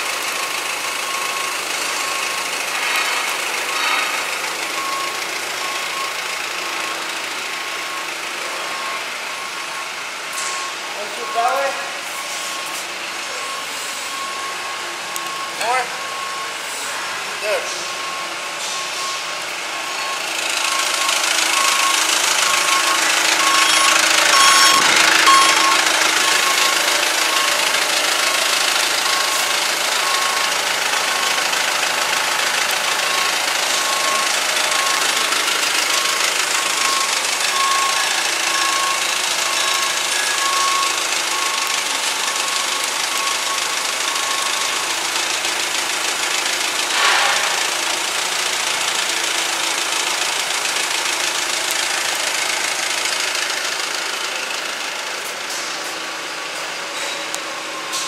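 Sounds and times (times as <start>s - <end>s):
forklift engine running: 0.0s - 58.0s.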